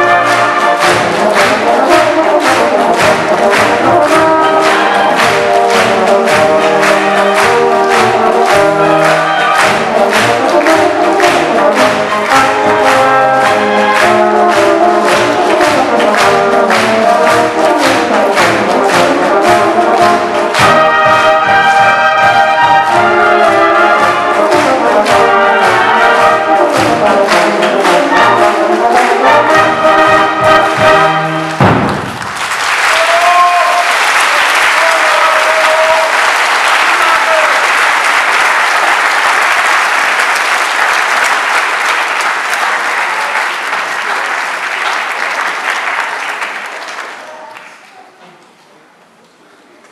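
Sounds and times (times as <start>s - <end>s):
wind band playing: 0.0s - 42.6s
audience applauding: 0.0s - 48.6s.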